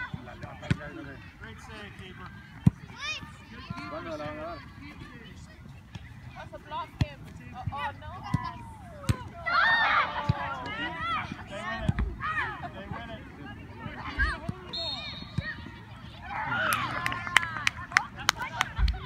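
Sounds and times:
voices shouting outdoors: 0:00.0 - 0:19.0.

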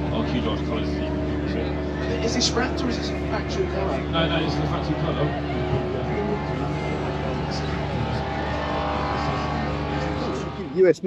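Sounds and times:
car engine idling: 0:00.0 - 0:10.9.

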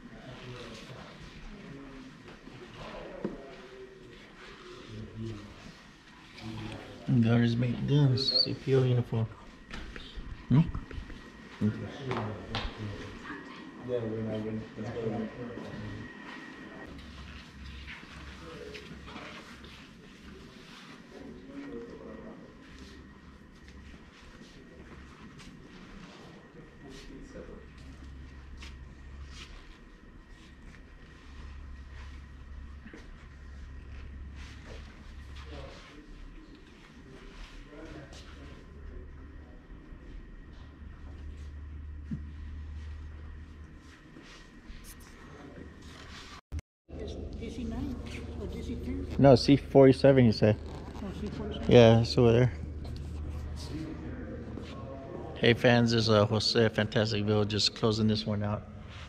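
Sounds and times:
faint voices talking: 0:00.0 - 0:29.2, 0:46.9 - 0:56.3
low steady hum: 0:00.0 - 0:59.0.

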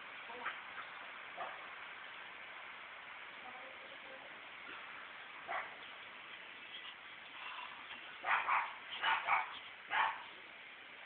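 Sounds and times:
dog yipping: 0:08.2 - 0:10.3.

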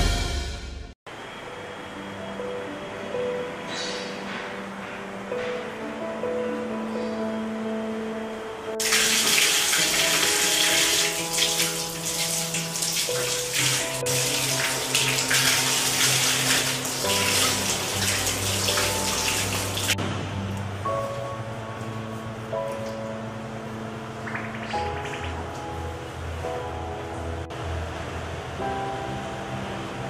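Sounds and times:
background music with held tones: 0:00.0 - 0:30.0
water splashing over hands: 0:08.8 - 0:20.0.

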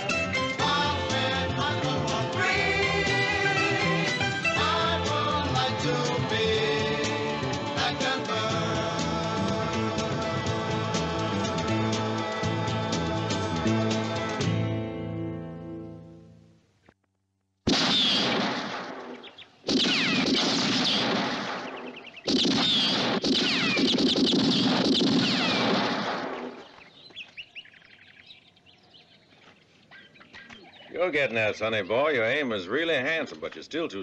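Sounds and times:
credit music: 0:00.0 - 0:16.1
whining ricochet: 0:17.7 - 0:26.6
revolver shots: 0:17.7 - 0:26.7
faint birdsong: 0:19.1 - 0:19.7, 0:21.5 - 0:23.0, 0:26.2 - 0:33.9.

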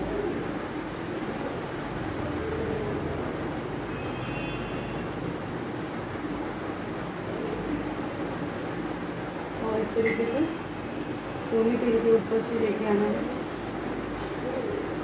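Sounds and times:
low background rumble and hum: 0:00.0 - 0:15.0.

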